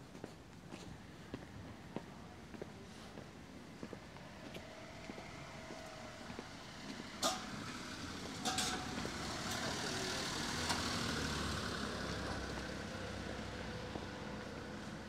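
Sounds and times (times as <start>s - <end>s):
vehicle passing close by: 4.6s - 15.0s.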